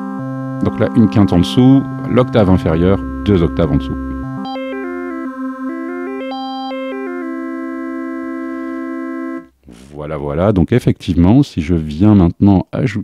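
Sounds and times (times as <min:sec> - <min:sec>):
steady synthesizer chord: 0:00.0 - 0:09.6
synthesizer note with stepping intervals: 0:00.0 - 0:09.6.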